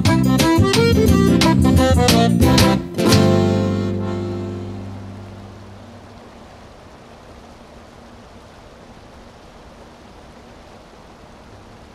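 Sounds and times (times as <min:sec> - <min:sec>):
acoustic band with guitar and accordion: 0:00.0 - 0:05.7
steady outdoor hiss: 0:00.0 - 0:11.9.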